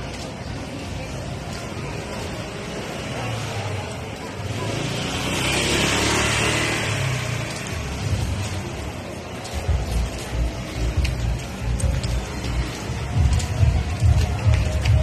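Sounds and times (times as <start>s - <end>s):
busy street noise: 0.0s - 15.0s
vehicle passing close by: 4.4s - 9.1s.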